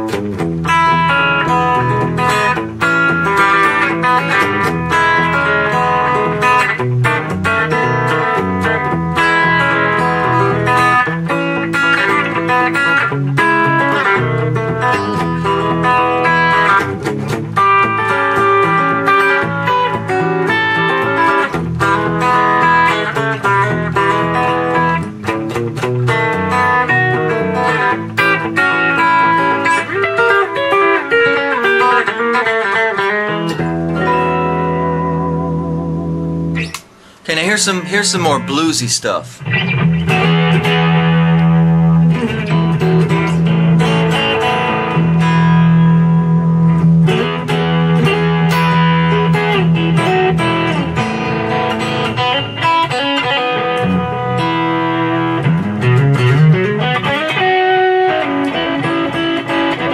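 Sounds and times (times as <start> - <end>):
electric guitar chicken-picking: 0.0 - 59.9.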